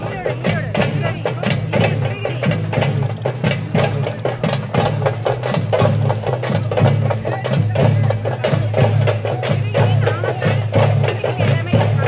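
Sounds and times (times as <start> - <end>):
drums fast even beat: 0.0 - 12.0.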